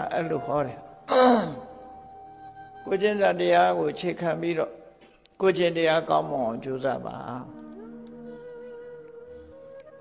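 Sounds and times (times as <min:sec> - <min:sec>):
soft steady musical tone: 0:00.0 - 0:10.0
man speaking: 0:02.9 - 0:04.8.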